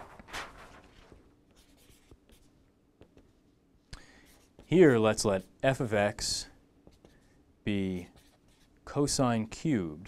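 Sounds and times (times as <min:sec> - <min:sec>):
pen scratching on paper: 0:01.5 - 0:02.5, 0:04.3 - 0:05.0, 0:08.0 - 0:08.7.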